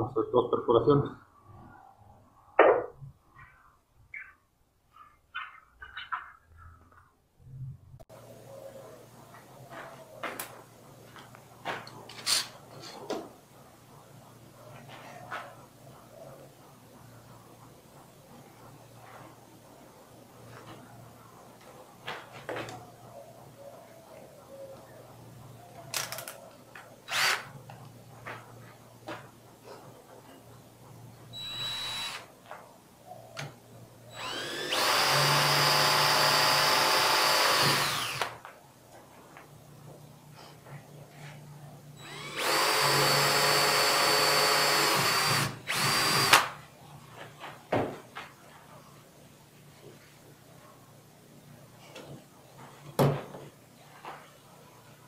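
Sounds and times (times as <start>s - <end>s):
cordless drill boring steel: 27.1s - 27.5s, 31.4s - 32.2s, 34.1s - 38.4s, 42.0s - 46.4s.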